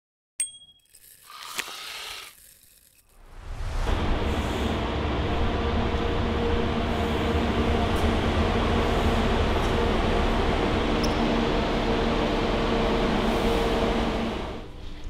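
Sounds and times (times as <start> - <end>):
metallic ding: 0.4 - 1.0
bus engine low rumble: 3.6 - 15.0.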